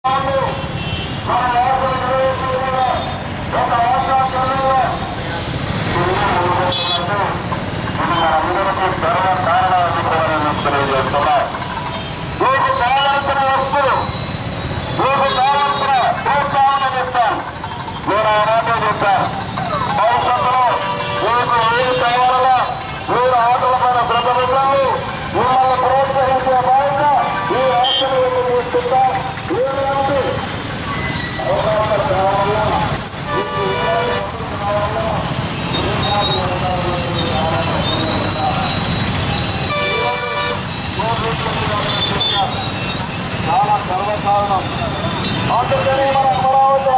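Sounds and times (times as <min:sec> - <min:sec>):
low traffic rumble: 0:00.0 - 0:46.9
voice calling out drawn-out phrases: 0:12.4 - 0:14.0.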